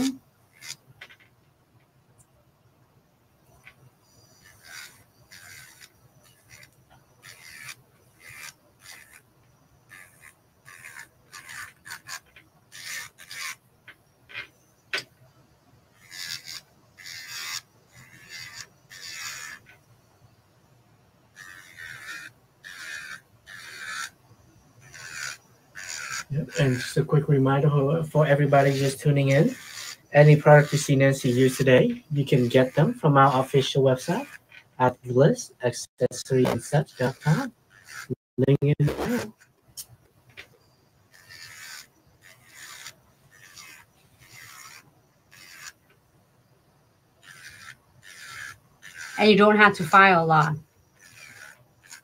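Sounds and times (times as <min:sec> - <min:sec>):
electric nail file humming: 0:00.0 - 0:00.8, 0:04.1 - 0:13.6, 0:16.0 - 0:19.8, 0:21.4 - 0:24.2, 0:24.8 - 0:34.6, 0:36.5 - 0:38.2, 0:38.8 - 0:39.4, 0:41.1 - 0:45.8, 0:47.2 - 0:52.0
nail file scraping nail: 0:00.0 - 0:00.8, 0:04.2 - 0:09.2, 0:09.9 - 0:13.6, 0:16.0 - 0:19.8, 0:21.4 - 0:24.2, 0:24.8 - 0:27.0, 0:28.3 - 0:34.7, 0:36.4 - 0:38.2, 0:38.8 - 0:39.9, 0:41.1 - 0:45.8, 0:47.2 - 0:52.0.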